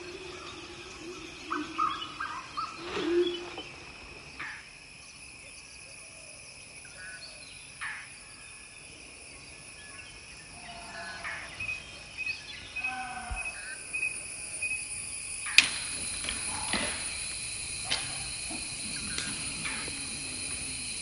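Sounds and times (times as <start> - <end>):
high insect drone: 0.0 - 21.0
sharp crack: 15.4 - 21.0.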